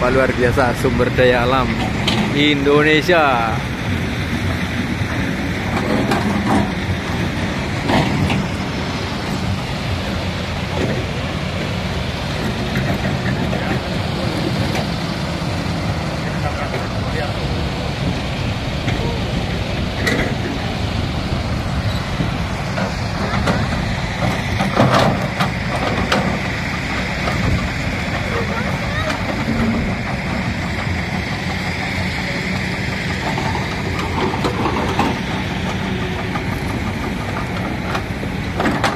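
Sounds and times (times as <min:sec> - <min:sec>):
diesel machinery droning: 0:00.0 - 0:38.9.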